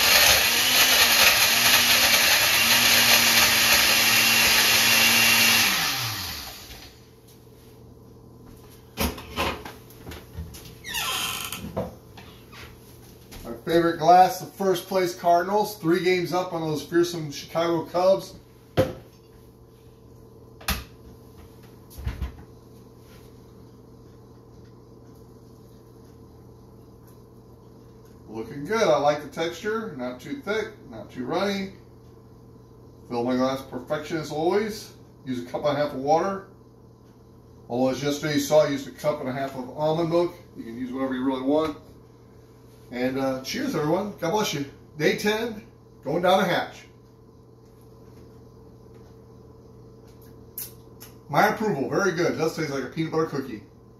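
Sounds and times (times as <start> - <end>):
faint steady hum: 0.2 - 53.9.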